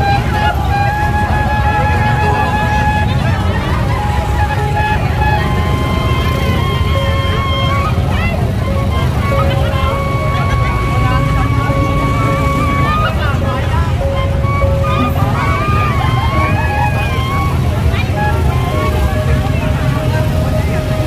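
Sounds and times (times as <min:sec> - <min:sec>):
dense crowd noise: 0:00.0 - 0:21.0.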